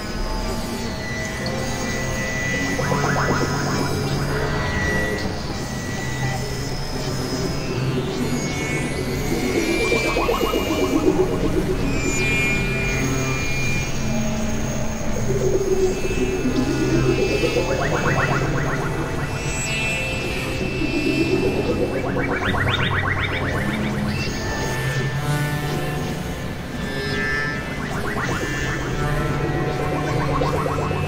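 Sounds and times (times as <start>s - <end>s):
experimental synthesizer music: 1.5s - 31.0s.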